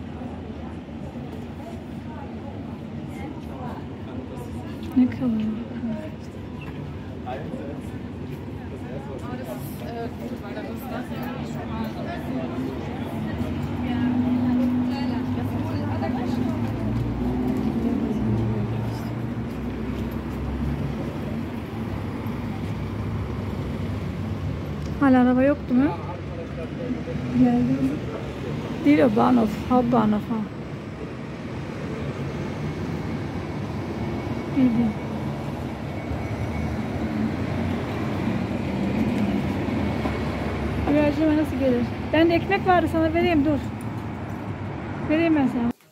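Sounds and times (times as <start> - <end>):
electric bus hum: 0.0 - 45.8
city street traffic: 0.0 - 45.9
indistinct talk of passers-by: 0.0 - 45.9
vehicle engine rumble: 0.0 - 45.9.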